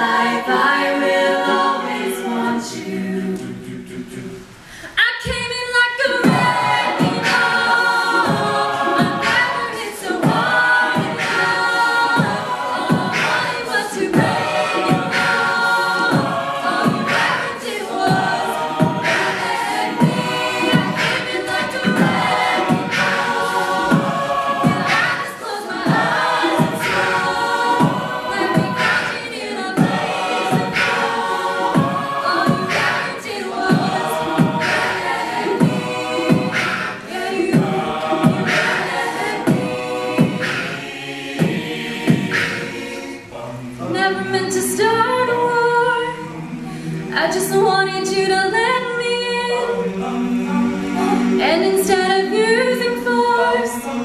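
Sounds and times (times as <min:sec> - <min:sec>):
a cappella group singing harmonies: 0:00.0 - 0:54.0
vocal percussion beat: 0:06.1 - 0:45.4.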